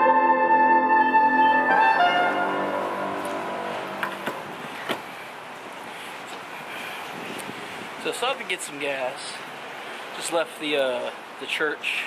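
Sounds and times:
faint hiss: 2.8s - 12.0s.

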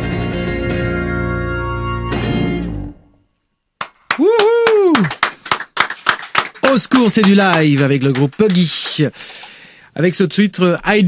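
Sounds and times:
person calling out: 4.2s - 5.1s.

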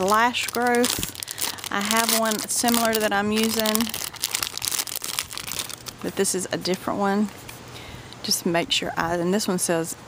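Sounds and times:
plastic packaging crinkling: 0.0s - 6.8s.

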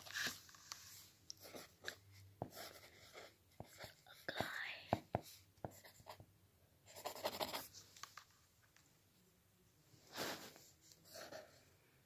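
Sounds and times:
pencil scratching on paper: 0.0s - 6.2s, 6.9s - 7.7s, 11.0s - 11.6s
pencil tapping on page: 1.5s - 6.3s.

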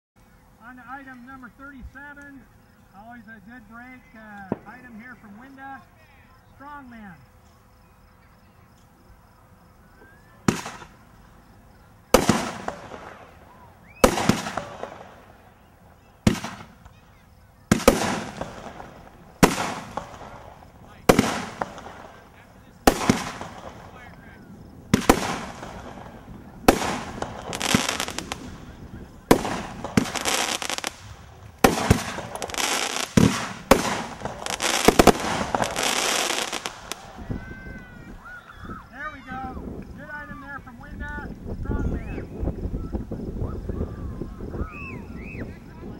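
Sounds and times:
firework bangs and crackle: 4.4s - 5.6s, 9.8s - 38.2s.

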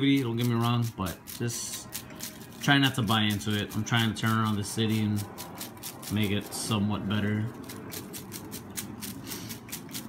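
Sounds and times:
paper slips rattling in basket: 0.0s - 10.0s.

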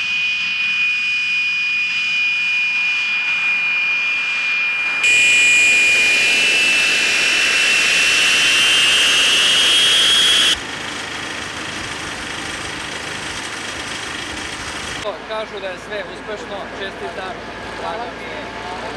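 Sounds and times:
jet engines whining: 1.6s - 15.0s
steady jet rush: 5.0s - 10.6s.

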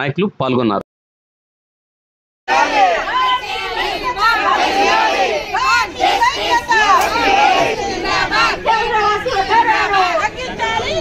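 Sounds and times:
crowd chanting slogans: 2.5s - 11.0s.

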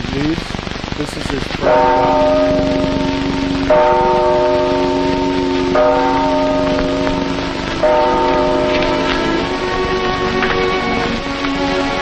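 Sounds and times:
steady hiss: 0.0s - 12.0s
church bells tolling: 1.5s - 12.0s.

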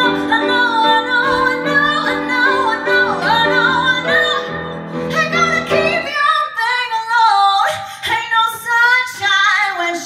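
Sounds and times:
piano accompaniment: 0.0s - 7.0s
woman singing ornamented melody: 0.0s - 7.4s.

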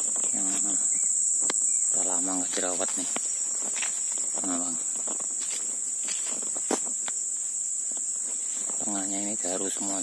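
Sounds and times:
insects droning: 0.0s - 10.0s
footsteps through leaf litter: 2.4s - 7.0s.

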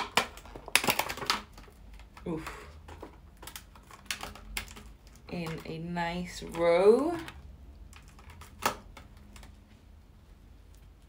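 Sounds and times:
crackling plastic clicks: 0.0s - 9.6s.

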